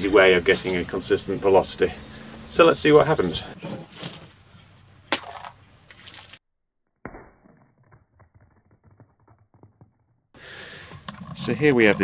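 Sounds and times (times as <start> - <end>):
egg cracking on concrete: 5.1 - 6.4, 7.0 - 10.4.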